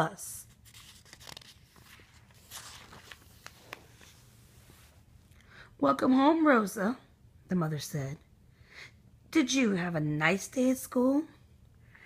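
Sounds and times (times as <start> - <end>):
paper page turning: 0.4 - 4.9.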